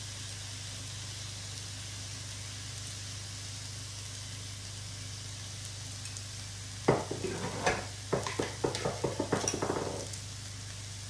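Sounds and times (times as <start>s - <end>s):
rice and garlic sizzling in pan: 0.0s - 11.0s
utensil knocking and tapping pan: 6.9s - 10.2s.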